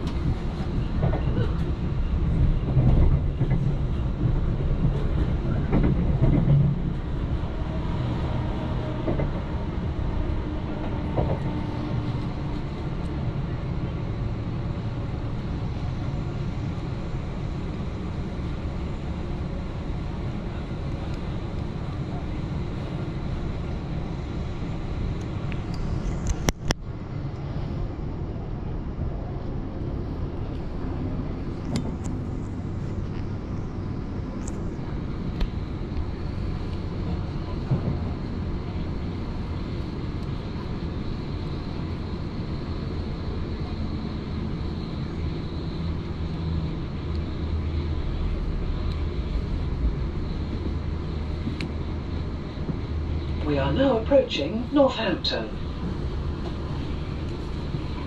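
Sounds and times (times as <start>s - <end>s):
electric train rumble: 0.0s - 58.0s.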